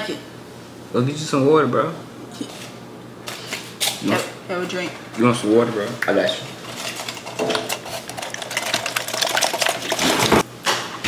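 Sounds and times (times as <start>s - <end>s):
foil-covered plastic cup crinkling: 6.7s - 10.4s.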